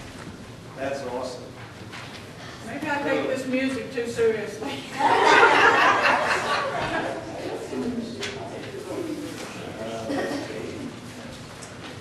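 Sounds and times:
people talking: 2.7s - 11.0s.

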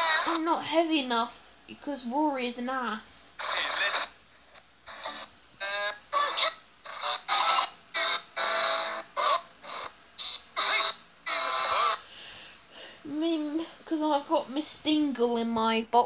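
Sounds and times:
cartoon soundtrack bursts: 3.4s - 4.1s.

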